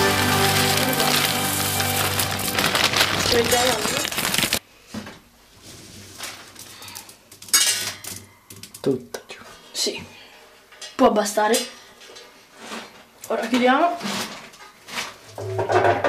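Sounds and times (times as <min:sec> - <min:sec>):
wood pellets pouring: 0:00.0 - 0:04.6.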